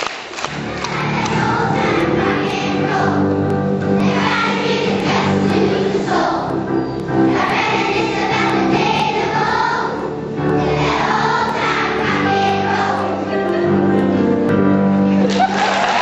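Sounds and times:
musical accompaniment: 0:00.4 - 0:16.0
children's choir singing: 0:00.5 - 0:15.2.

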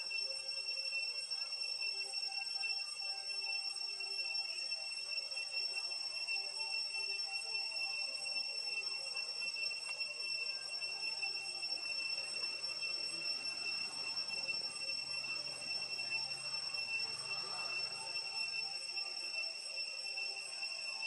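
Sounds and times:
high-pitched whine: 0:08.9 - 0:21.0.

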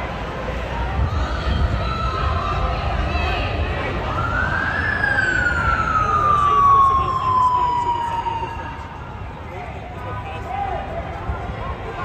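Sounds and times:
street noise: 0:00.0 - 0:12.0
voices: 0:00.0 - 0:12.0
emergency vehicle siren wailing: 0:01.3 - 0:09.5.

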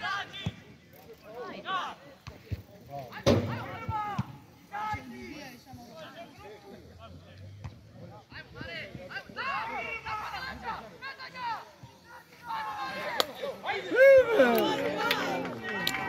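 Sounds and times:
players shouting: 0:09.1 - 0:16.0.

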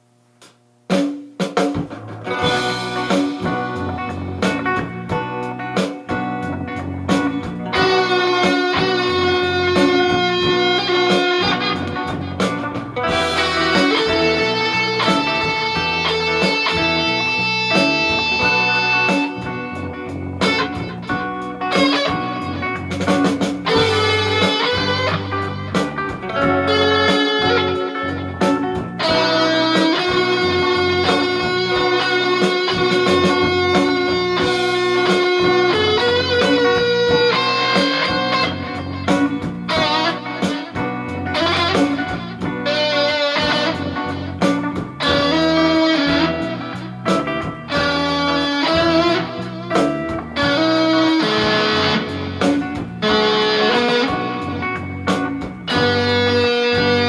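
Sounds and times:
electric guitar playing slow blues: 0:01.8 - 0:57.0.

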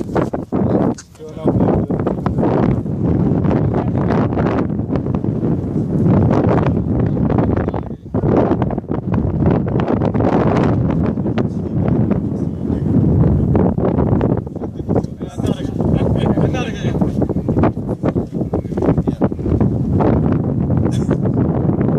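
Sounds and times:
loud wind buffeting microphone: 0:00.0 - 0:21.9.

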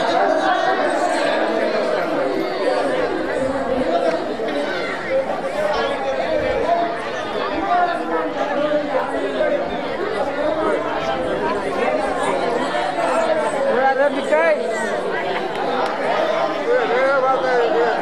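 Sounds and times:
many voices chattering: 0:00.0 - 0:18.0.

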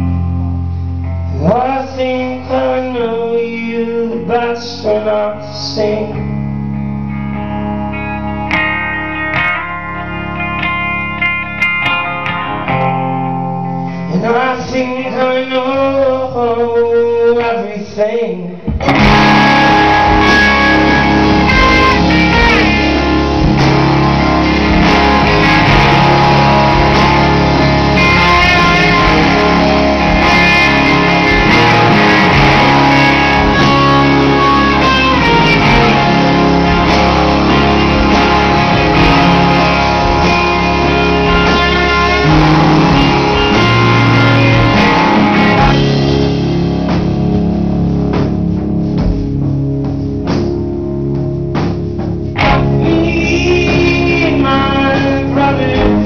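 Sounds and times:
drums: 0:00.0 - 0:56.0
electric guitar: 0:00.0 - 0:56.0.

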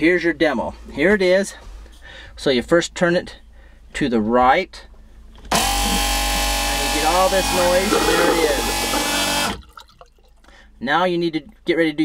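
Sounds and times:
toilet macerator pump running: 0:05.5 - 0:09.7
faint water in toilet bowl: 0:07.5 - 0:10.6.

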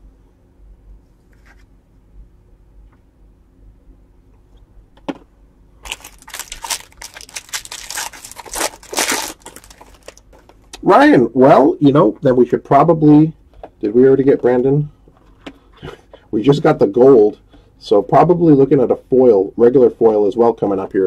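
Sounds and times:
foil wrapper tearing and crinkling: 0:05.8 - 0:10.4.

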